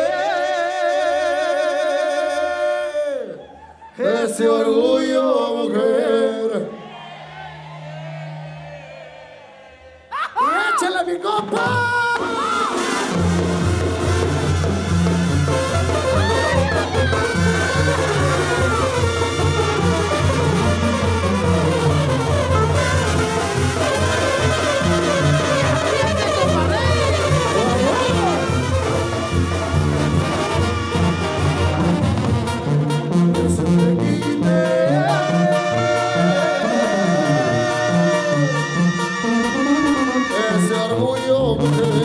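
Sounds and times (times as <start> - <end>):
trumpets and trombones playing: 12.6 - 42.0
tuba bass line: 12.6 - 42.0.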